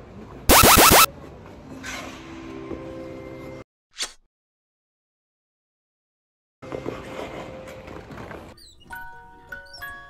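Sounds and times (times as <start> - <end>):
electronic tones dropping in pitch: 0.5 - 1.1.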